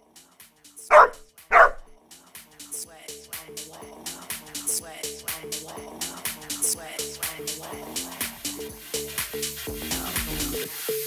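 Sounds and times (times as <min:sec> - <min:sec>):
dog barking: 0:00.9 - 0:02.0.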